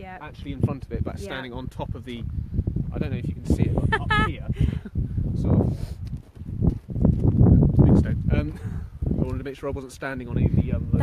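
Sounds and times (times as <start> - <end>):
footsteps dull thuds: 6.0 - 7.5.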